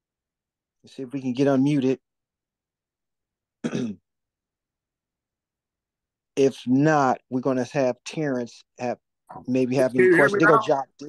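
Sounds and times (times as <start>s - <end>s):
man clearing throat: 3.6s - 4.0s.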